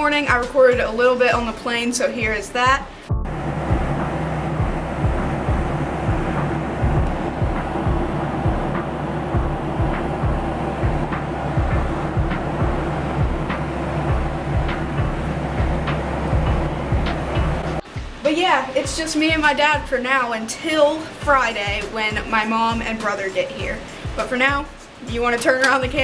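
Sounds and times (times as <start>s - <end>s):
airliner engine drone: 3.2s - 17.8s.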